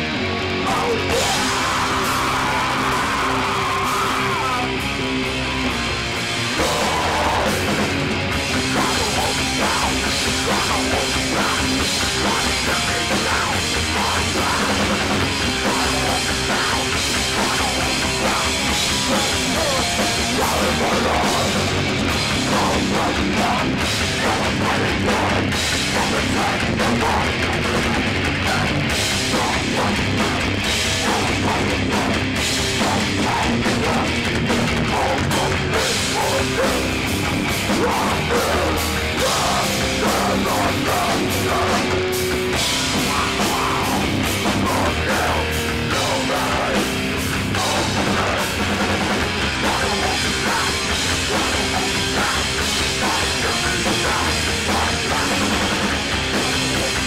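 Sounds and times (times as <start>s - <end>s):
punk band playing live: 0.0s - 57.0s.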